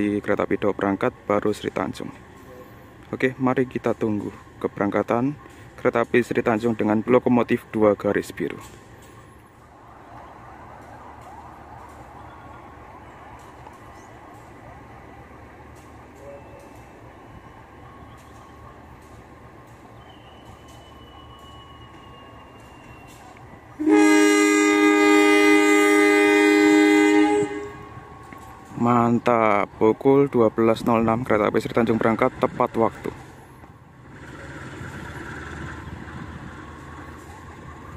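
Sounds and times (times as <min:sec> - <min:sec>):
station background noise: 0:00.0 - 0:37.9
locomotive air horn blast: 0:23.8 - 0:28.1.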